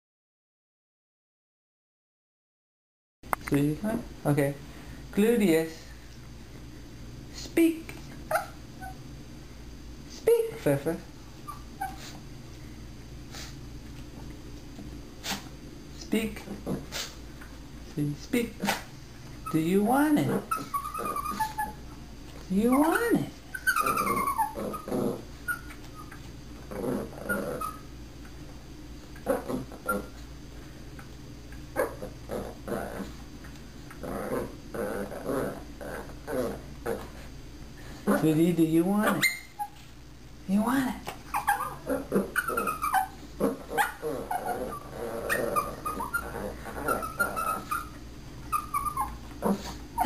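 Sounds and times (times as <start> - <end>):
low room hum: 3.2 - 50.0
small dog whimpering: 8.3 - 9.0, 11.5 - 12.2, 20.3 - 21.8, 22.8 - 26.2, 27.0 - 27.9, 29.2 - 30.1, 41.3 - 50.0
puppies whining and yipping: 11.4 - 12.2, 20.5 - 21.8, 23.5 - 26.3, 41.3 - 43.2, 43.8 - 50.0
dog breathy huffs: 13.2 - 13.6.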